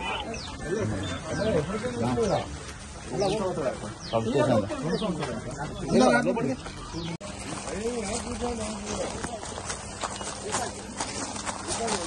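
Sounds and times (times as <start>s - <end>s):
footsteps on gravel: 1.5s - 12.0s.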